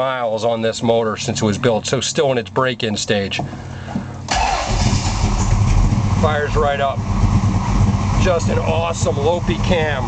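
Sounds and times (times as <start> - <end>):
car engine starting: 3.4 - 10.0
loud deep uneven engine idle: 3.6 - 10.0.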